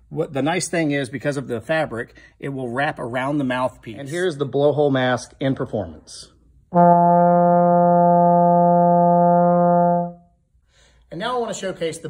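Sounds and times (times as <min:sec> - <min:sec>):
muted trombone held note: 0:06.7 - 0:10.3.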